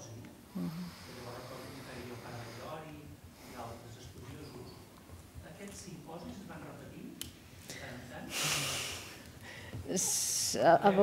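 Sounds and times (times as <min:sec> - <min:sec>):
sharp intake of breath: 0:07.7 - 0:09.8.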